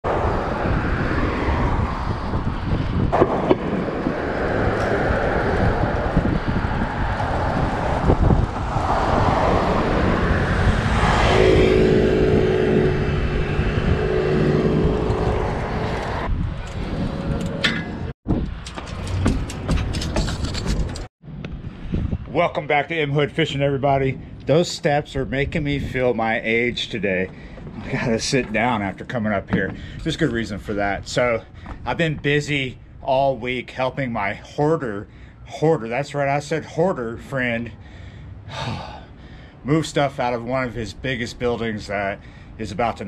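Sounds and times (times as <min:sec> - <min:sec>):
vehicle engine hum: 0:00.0 - 0:22.2
wind on microphone: 0:00.0 - 0:22.7, 0:23.6 - 0:32.5
street traffic: 0:00.0 - 0:43.0.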